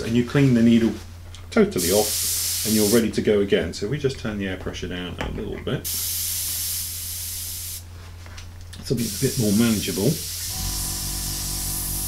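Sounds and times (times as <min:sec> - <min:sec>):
airbrush hissing: 0:01.8 - 0:03.1, 0:05.9 - 0:07.9, 0:09.0 - 0:12.0
low pulsing hum: 0:10.5 - 0:12.0.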